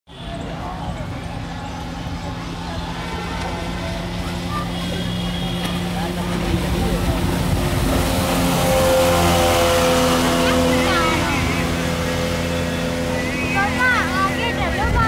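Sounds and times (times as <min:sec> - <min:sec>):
rushing wake water: 0:00.1 - 0:15.0
speedboat engine passing: 0:00.1 - 0:15.0.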